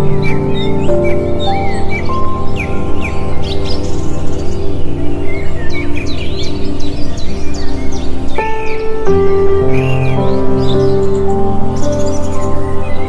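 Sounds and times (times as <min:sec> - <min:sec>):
calm background music: 0:00.0 - 0:13.0
chirping bird calls: 0:00.0 - 0:13.0.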